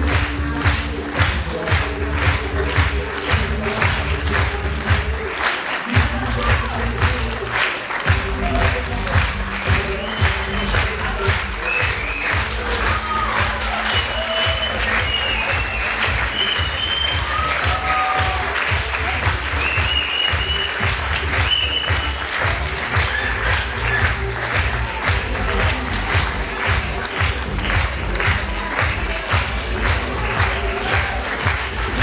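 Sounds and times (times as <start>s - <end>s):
audience applauding: 0.0s - 32.0s
music with low beat: 6.0s - 7.4s, 8.1s - 32.0s.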